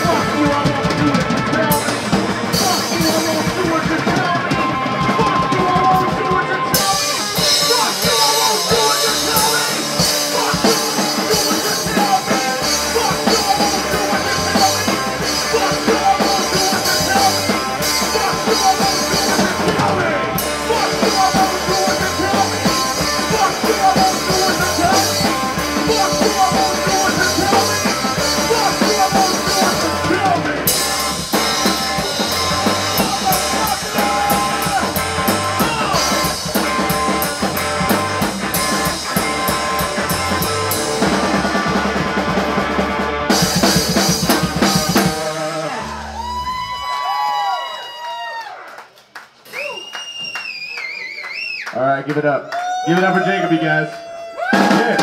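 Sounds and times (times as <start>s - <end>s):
drum kit: 0.0s - 47.3s, 54.4s - 55.0s
electric guitar: 0.0s - 47.6s
people whooping: 45.6s - 55.0s.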